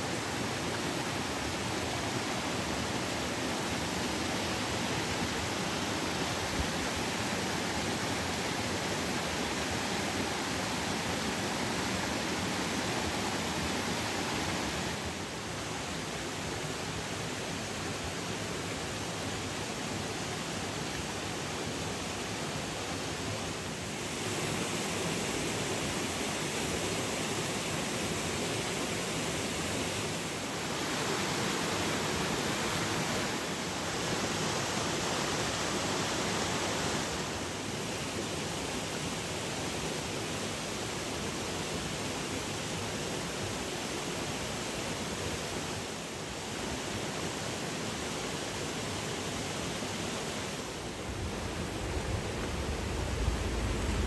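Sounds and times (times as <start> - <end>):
stream rushing over rocks: 0.0 - 54.0.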